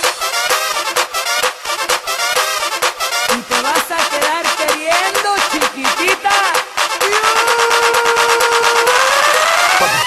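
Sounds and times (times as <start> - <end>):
fast dense percussion: 0.0 - 10.0.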